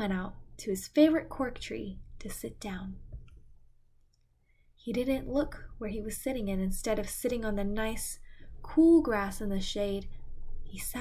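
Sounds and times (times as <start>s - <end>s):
woman reading aloud: 0.0s - 3.0s, 4.8s - 11.0s.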